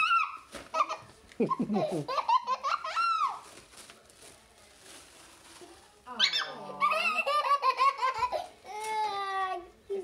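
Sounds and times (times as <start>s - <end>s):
young child laughing: 0.8s - 3.0s.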